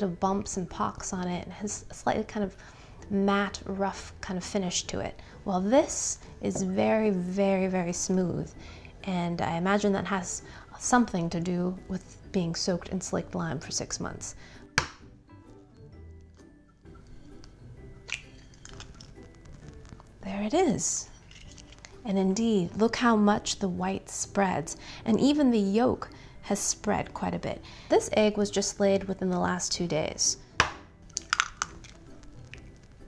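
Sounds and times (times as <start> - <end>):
soft background music: 0.0 - 33.0
egg shell cracking: 17.3 - 20.2, 21.1 - 22.0, 30.6 - 33.0.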